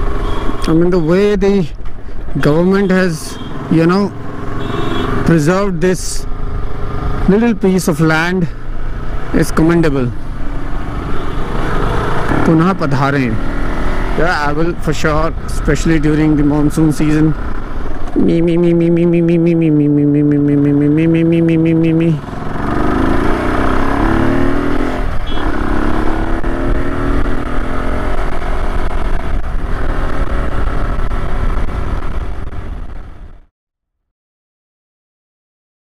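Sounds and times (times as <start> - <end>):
motorcycle engine running: 3.4 - 5.3, 10.2 - 33.4
wind rushing over microphone: 22.3 - 33.3.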